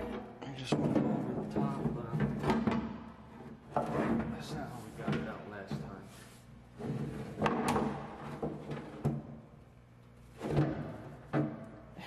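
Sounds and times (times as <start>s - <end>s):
hollow metal clunks and knocks: 0.0s - 4.4s, 6.9s - 9.3s, 10.4s - 11.7s.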